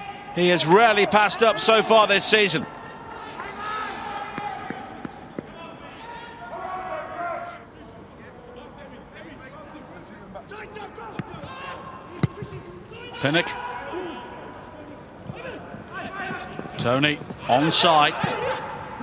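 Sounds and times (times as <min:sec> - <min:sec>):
players shouting: 0:00.0 - 0:07.8, 0:10.4 - 0:19.0.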